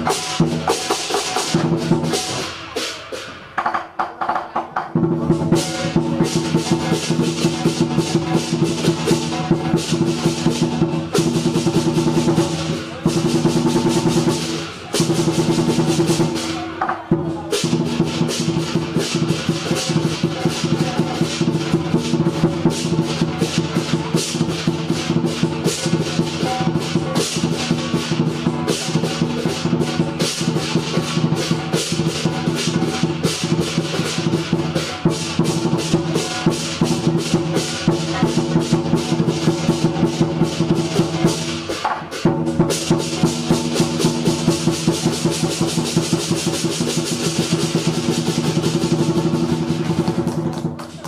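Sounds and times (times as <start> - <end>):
rapid driving drumming: 0.0 - 51.0.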